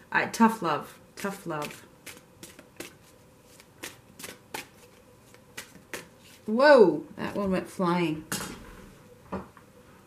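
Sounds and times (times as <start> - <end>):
cards being shuffled: 1.6 - 6.5.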